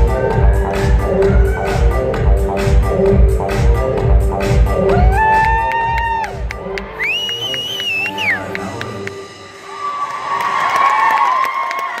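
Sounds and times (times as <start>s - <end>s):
hip hop music with bass beat: 0.0s - 9.2s
high-pitched whoops: 4.9s - 8.6s, 9.6s - 12.0s
audience cheering: 9.6s - 12.0s.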